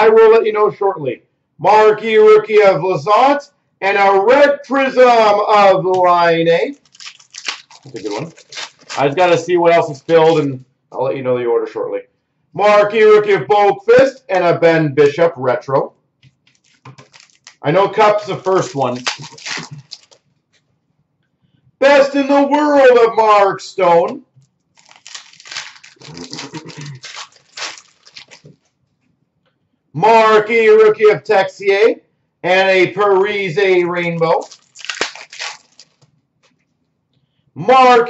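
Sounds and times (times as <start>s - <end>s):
foil wrapper crinkling: 6.6s - 10.6s, 16.4s - 20.3s, 24.7s - 28.7s, 34.1s - 36.1s
cards rustling: 6.7s - 10.6s, 16.3s - 20.2s, 24.8s - 28.7s, 34.1s - 36.1s.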